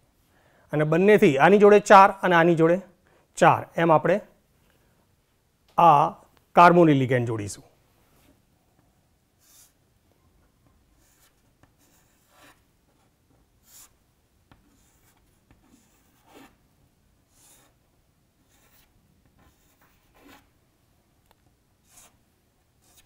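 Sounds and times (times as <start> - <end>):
chalk scratching on chalkboard: 9.4 - 9.8, 11.0 - 16.6, 17.3 - 17.8, 18.4 - 20.5, 21.8 - 22.2, 22.8 - 23.0.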